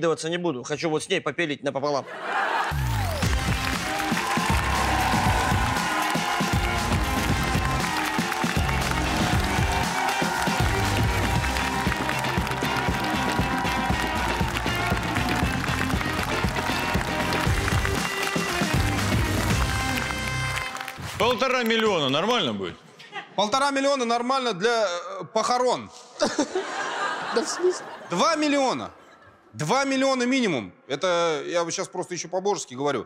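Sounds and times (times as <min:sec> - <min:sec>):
studio audience applauding: 0:02.4 - 0:22.6
upbeat show music: 0:02.7 - 0:22.6.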